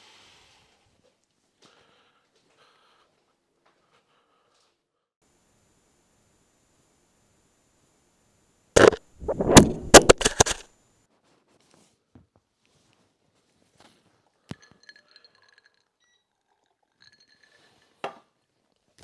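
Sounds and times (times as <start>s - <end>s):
camera falling and clattering: 8.8s - 10.6s.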